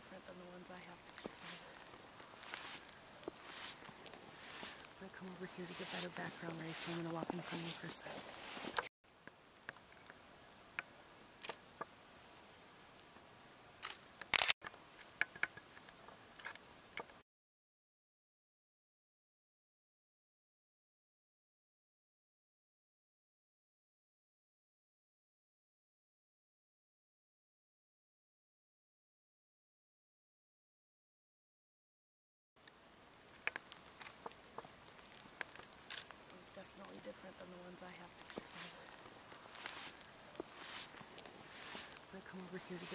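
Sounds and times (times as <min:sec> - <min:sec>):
small clicks and ticks: 0:00.0 - 0:05.4, 0:08.7 - 0:11.9, 0:13.8 - 0:17.2, 0:32.6 - 0:42.9
faint steady hiss: 0:00.0 - 0:17.2, 0:32.6 - 0:42.9.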